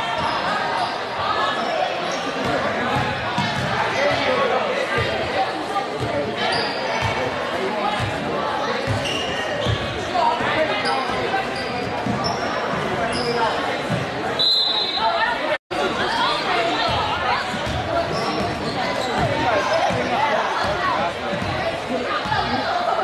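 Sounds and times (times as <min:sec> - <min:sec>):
voices of spectators: 0:00.0 - 0:23.0.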